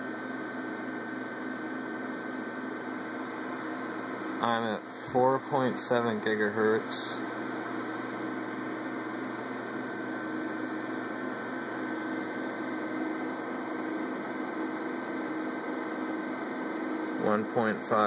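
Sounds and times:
computer cooling fans whirring: 0.0 - 18.0.

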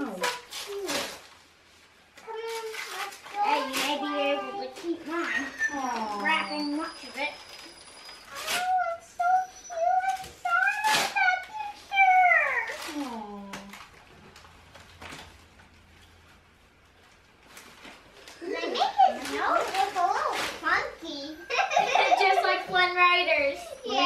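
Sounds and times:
wrapping paper tearing: 0.0 - 1.5, 2.2 - 15.4, 17.4 - 21.0
children talking: 2.2 - 13.4, 18.4 - 24.0
child's high wavering voice: 8.3 - 13.0, 23.4 - 24.0.

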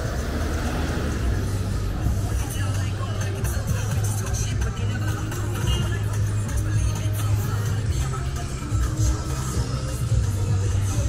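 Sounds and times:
low rumble of traffic: 0.0 - 11.0
music playing: 0.0 - 11.0
people's voices: 0.0 - 11.0.

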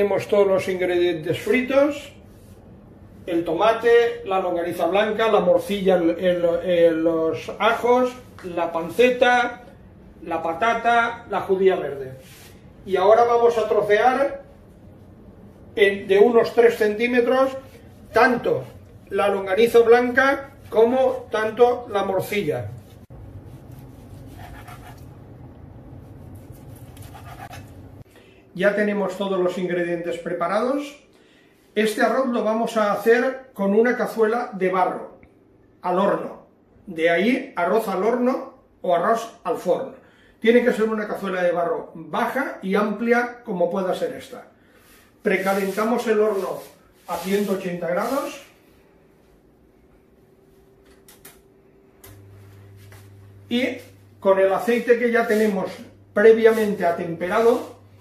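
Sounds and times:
steady low hum: 0.0 - 28.6, 47.7 - 58.0.

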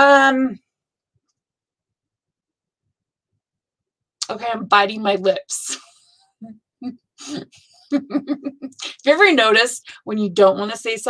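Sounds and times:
woman speaking: 0.0 - 0.6, 4.2 - 5.8, 7.2 - 11.0
woman chuckling: 7.2 - 8.8.

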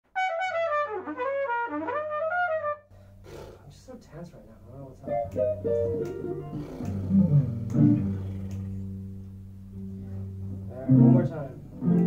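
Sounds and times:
trumpet playing quick run: 0.1 - 2.9.

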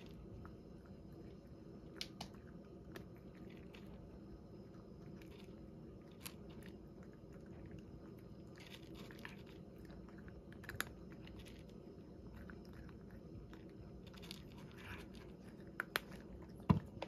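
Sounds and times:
cat crunching dry kibble: 0.0 - 17.0.

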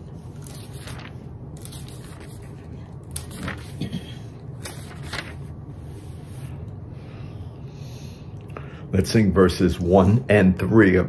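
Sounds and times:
pages rustling: 0.0 - 6.8.

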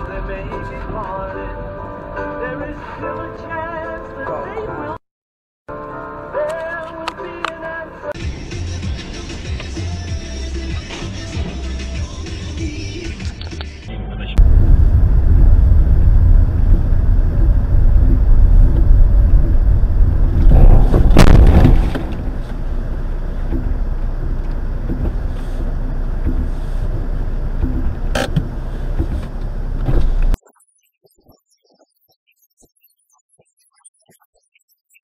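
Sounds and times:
loud burst: 14.4 - 22.6
vehicle rumbling in snow: 14.4 - 30.4.

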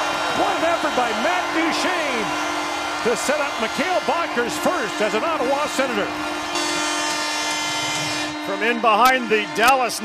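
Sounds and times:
arena goal horn: 0.1 - 10.0.

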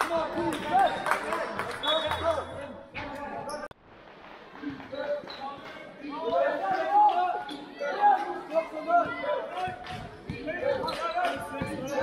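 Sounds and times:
basketball bouncing on court floor: 9.1 - 12.0.

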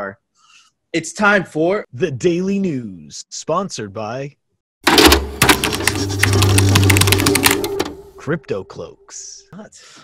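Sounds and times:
fast mechanical clicks: 4.9 - 7.9.

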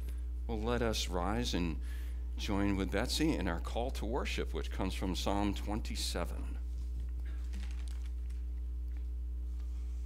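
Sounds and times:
low electrical hum: 0.0 - 10.0
people moving clicks and rustles: 6.6 - 8.6.

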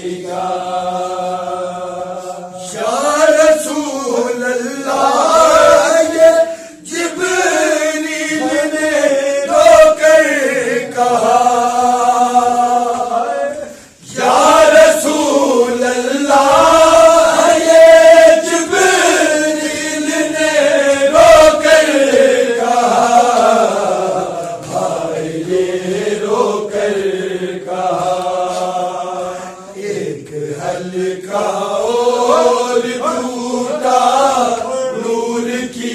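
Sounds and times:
men chanting a lament: 0.0 - 35.9.

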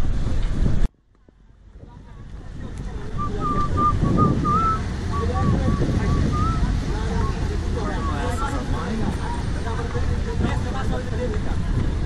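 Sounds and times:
wind rumbling on microphone: 0.0 - 12.0
person whistling a tune: 3.2 - 6.6.

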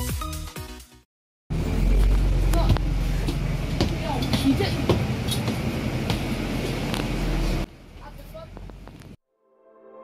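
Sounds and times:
bus engine drone: 1.5 - 9.2.

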